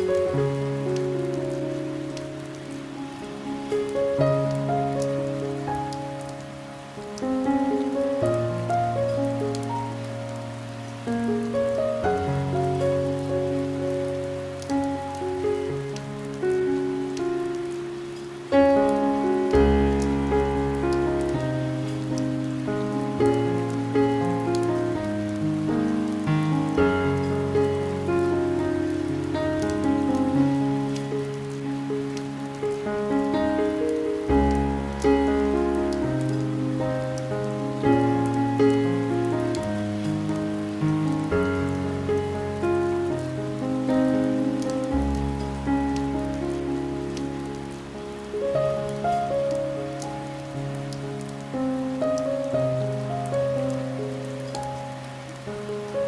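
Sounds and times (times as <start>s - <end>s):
calm piano music: 0.0s - 56.0s
rain pattering on window: 0.0s - 56.0s.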